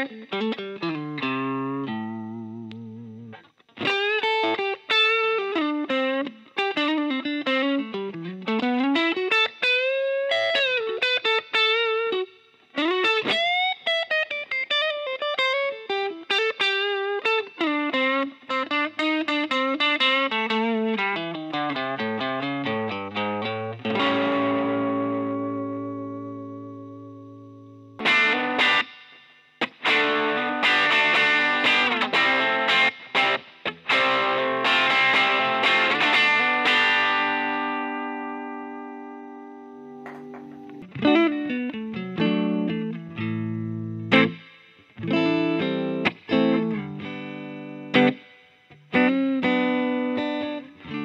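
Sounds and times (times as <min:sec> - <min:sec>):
electric guitar lead lines: 0:00.0 - 0:51.0
guitar chord ringing: 0:21.2 - 0:28.9, 0:29.6 - 0:51.0.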